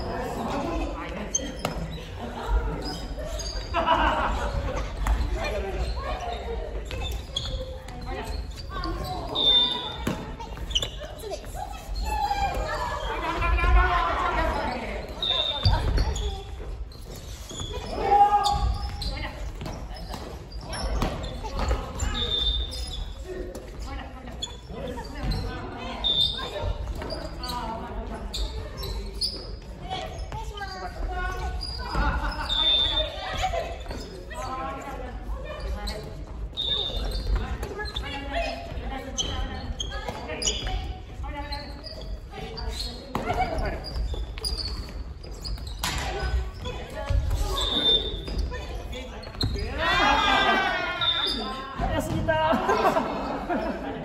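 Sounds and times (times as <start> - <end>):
players' voices and calls: 0.0 - 54.0.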